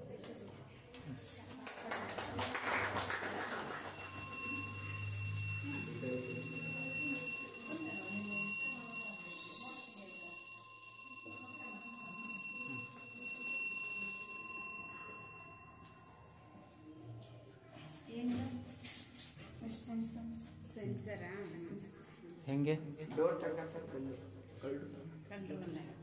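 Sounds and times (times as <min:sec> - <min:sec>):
shrill electronic buzzer tone: 0:03.8 - 0:16.2.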